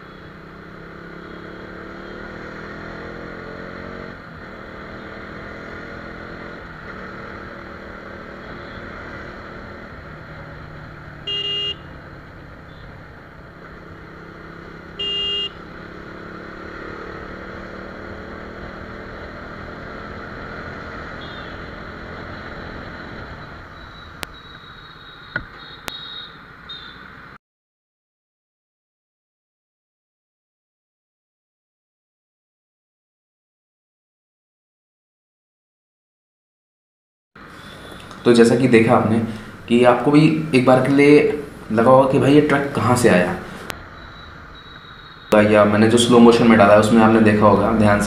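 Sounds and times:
motorcycle engine revving through gears: 0:00.0 - 0:26.1, 0:37.4 - 0:48.0
horn beeps: 0:01.0 - 0:02.4, 0:11.2 - 0:11.9, 0:14.9 - 0:15.7, 0:21.1 - 0:27.1, 0:37.6 - 0:38.4, 0:43.5 - 0:47.1.

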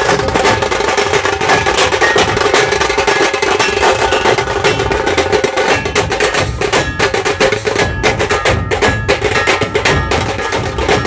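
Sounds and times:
deep barrel drum beats: 0:00.0 - 0:11.0
rapid drum stick strokes: 0:00.0 - 0:11.0.

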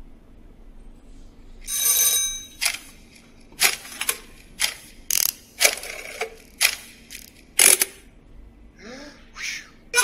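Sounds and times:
mechanical clicking and ratcheting: 0:03.6 - 0:08.0.

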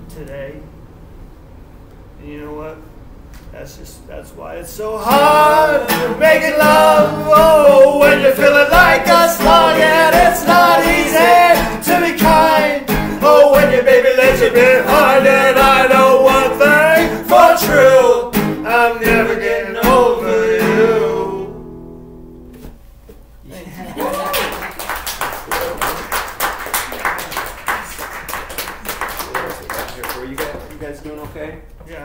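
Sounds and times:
two voices singing: 0:04.8 - 0:21.6
acoustic guitars: 0:04.9 - 0:22.9
small audience clapping: 0:23.8 - 0:31.4.

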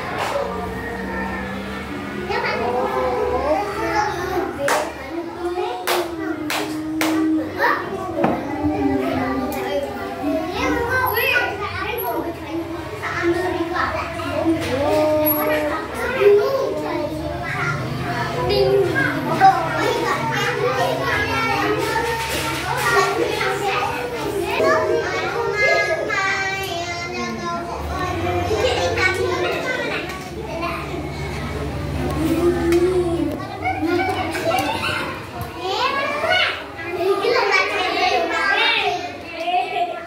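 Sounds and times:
children chattering: 0:00.0 - 0:40.0.

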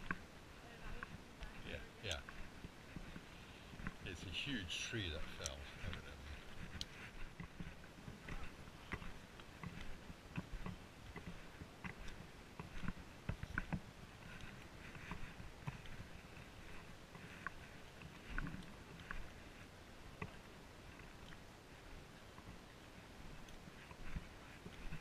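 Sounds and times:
footsteps on dirt trail: 0:00.0 - 0:25.0.

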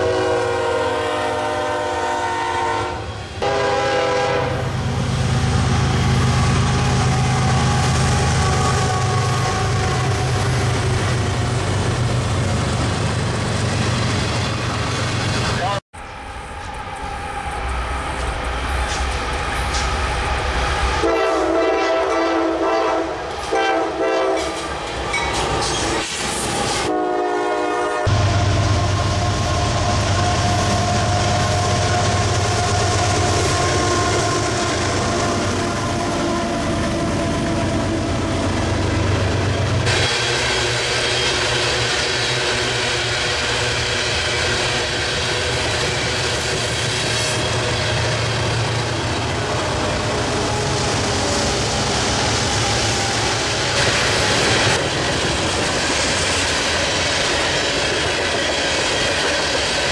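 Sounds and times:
train horn blasts: 0:00.0 - 0:04.8, 0:21.0 - 0:24.6, 0:26.8 - 0:36.3
train wheels clickety-clack: 0:16.6 - 0:20.4, 0:24.3 - 0:26.9, 0:39.2 - 0:59.9.

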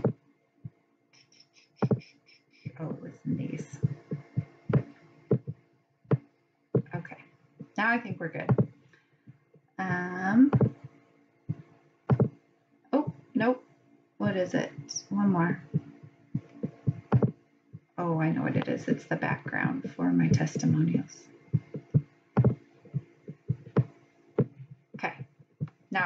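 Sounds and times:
faint low hum: 0:00.0 - 0:26.0
soft taps and clicks: 0:01.2 - 0:02.8, 0:03.8 - 0:07.0
soft thuds or clicks: 0:01.8 - 0:02.8, 0:03.8 - 0:07.8, 0:08.4 - 0:09.4, 0:10.4 - 0:10.9, 0:11.5 - 0:12.4, 0:15.7 - 0:18.0, 0:21.5 - 0:25.9.

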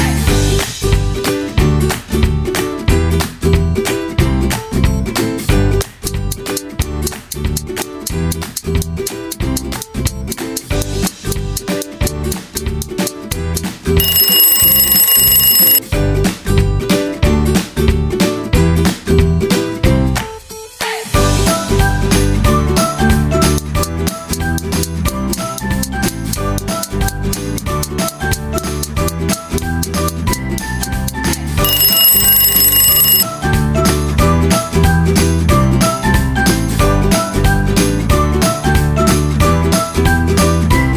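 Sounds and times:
alarm clock bell ringing: 0:14.0 - 0:15.8, 0:31.6 - 0:33.2.

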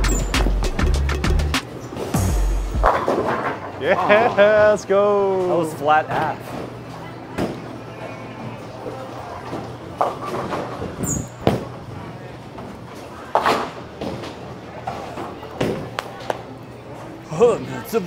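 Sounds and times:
background music: 0:00.0 - 0:05.2
bowling balls and pins clattering: 0:02.8 - 0:04.7, 0:09.4 - 0:16.0.

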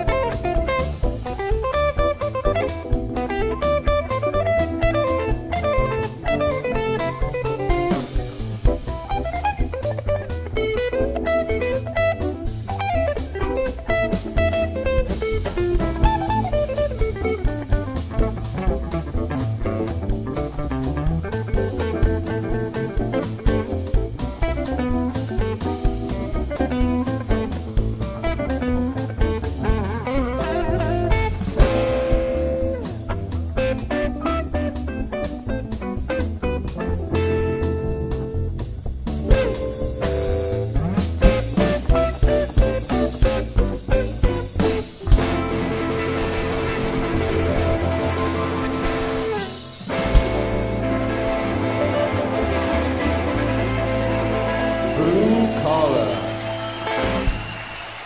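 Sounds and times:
upright bass: 0:00.0 - 0:57.6
electric guitar lead runs: 0:00.0 - 0:57.7
drum kit with cymbals: 0:00.0 - 0:58.0.

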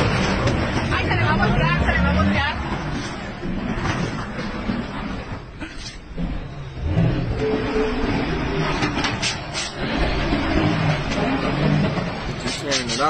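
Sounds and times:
truck engine and tyre noise: 0:00.0 - 0:13.0
people talking: 0:00.9 - 0:02.6, 0:12.5 - 0:13.0.

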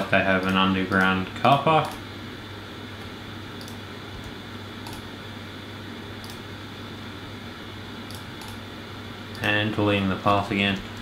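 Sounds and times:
low electrical hum: 0:00.0 - 0:11.0
computer mouse clicks: 0:03.6 - 0:05.1, 0:06.2 - 0:06.4, 0:08.1 - 0:08.6, 0:09.3 - 0:09.6.

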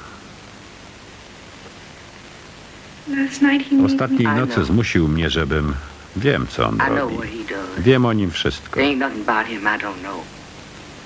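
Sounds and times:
faint background hiss: 0:00.0 - 0:11.0
person speaking: 0:03.7 - 0:05.0, 0:05.7 - 0:09.0.

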